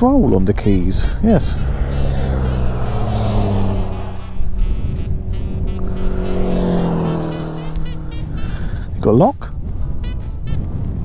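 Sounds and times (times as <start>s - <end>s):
motorcycle passing by: 0.0s - 10.5s.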